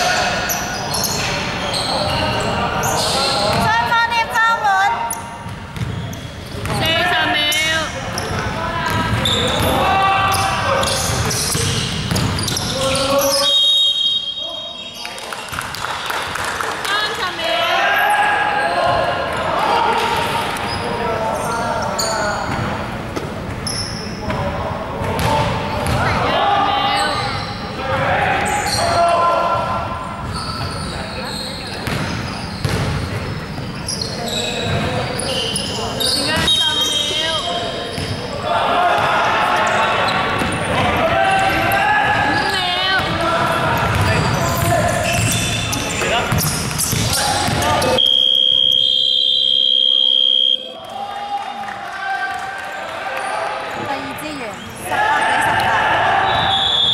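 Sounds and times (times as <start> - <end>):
sneakers squeaking: 0.0 - 15.8, 17.9 - 41.1, 41.7 - 50.6, 52.7 - 56.9
basketball bouncing on wooden court: 5.4 - 6.8, 8.2 - 9.6, 10.8 - 12.6, 25.1 - 26.1, 31.8 - 33.1, 43.0 - 45.5, 46.3 - 47.8
players calling out: 34.2 - 51.2.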